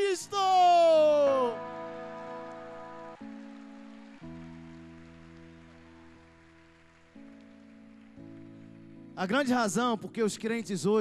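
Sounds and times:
soft keyboard pad chords: 0:00.4 - 0:11.0.

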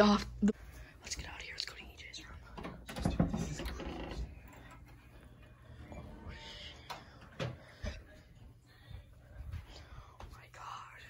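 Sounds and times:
faint whispering voices: 0:00.9 - 0:11.0.

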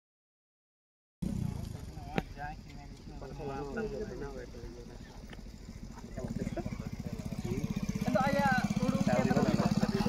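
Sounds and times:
motorcycle engine idling: 0:01.2 - 0:10.0
people talking: 0:01.2 - 0:10.0.

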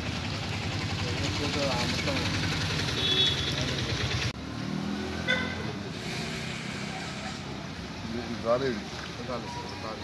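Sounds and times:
vehicle engine running: 0:00.0 - 0:04.6
street background: 0:00.0 - 0:10.0.

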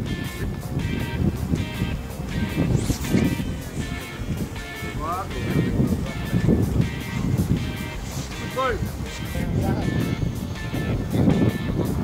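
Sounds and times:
music playing: 0:00.0 - 0:12.0
low uneven rumbling: 0:00.4 - 0:12.0.

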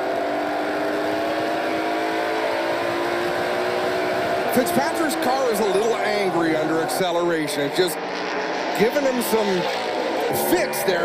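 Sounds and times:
race car engine at steady revs: 0:00.0 - 0:11.0
road and wind noise: 0:00.0 - 0:11.0.

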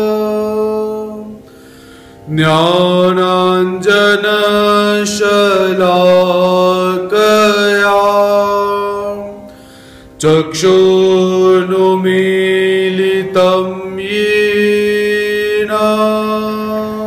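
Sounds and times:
man chanting: 0:00.0 - 0:01.4, 0:02.3 - 0:09.5, 0:10.2 - 0:17.0.

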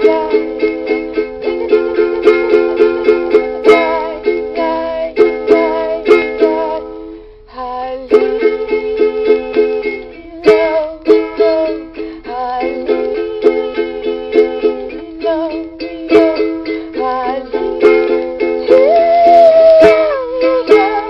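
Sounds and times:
picked ukulele melody notes: 0:00.0 - 0:21.0
ukulele strumming: 0:00.0 - 0:21.0.

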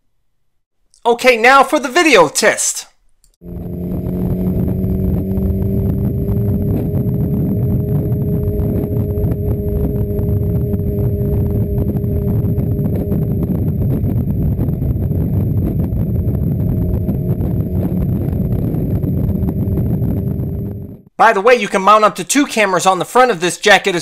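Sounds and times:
low wind rumble: 0:03.4 - 0:21.1
motorcycle engine cruising: 0:03.4 - 0:21.1.

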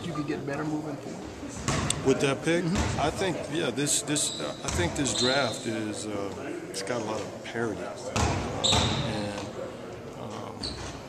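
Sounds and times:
basketball bouncing on gym floor: 0:08.2 - 0:09.0.

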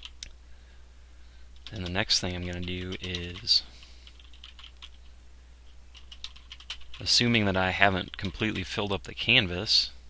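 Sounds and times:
keyboard typing: 0:00.0 - 0:00.3, 0:01.6 - 0:05.1, 0:05.9 - 0:08.8
low steady hum: 0:00.0 - 0:10.0.

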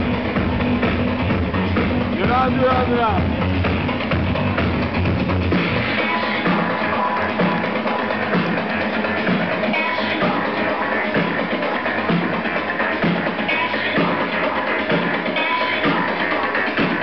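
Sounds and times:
breakbeat dance music: 0:00.0 - 0:17.0.

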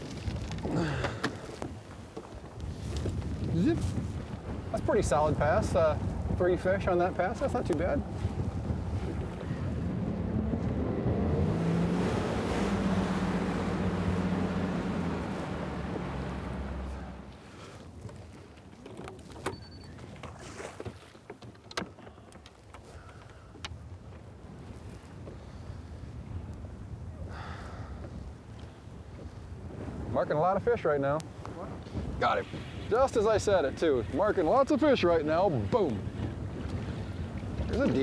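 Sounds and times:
clicks and knocks on boat: 0:00.0 - 0:03.4, 0:17.8 - 0:24.3, 0:35.6 - 0:38.0
water noise: 0:00.0 - 0:38.0
wind: 0:00.0 - 0:38.0
outboard motor running: 0:07.8 - 0:17.6.

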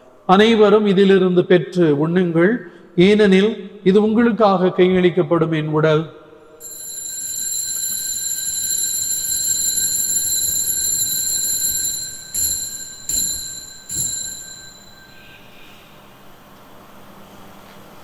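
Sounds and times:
altar bell ringing: 0:06.6 - 0:16.1
bell strikes: 0:11.6 - 0:15.8.

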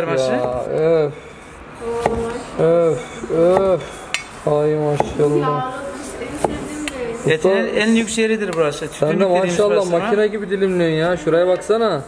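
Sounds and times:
cleaver knocking on wooden board: 0:05.0 - 0:05.2, 0:06.4 - 0:06.7.

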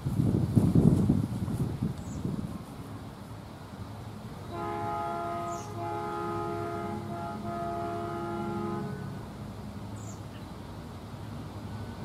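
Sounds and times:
train chime horn blasts: 0:04.5 - 0:09.2.

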